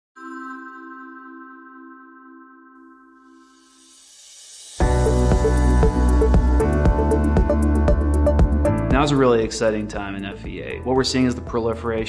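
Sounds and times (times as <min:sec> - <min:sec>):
sustained electronic chord: 0:02.3 - 0:09.9.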